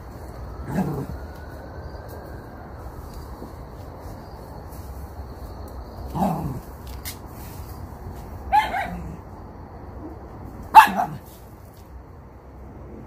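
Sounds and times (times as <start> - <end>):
dog barking: 8.5 - 9.2, 10.7 - 11.3.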